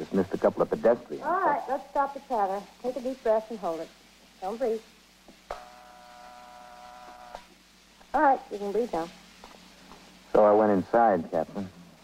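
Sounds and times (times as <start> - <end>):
electrical buzz of x-ray machine: 1.4 - 11.2.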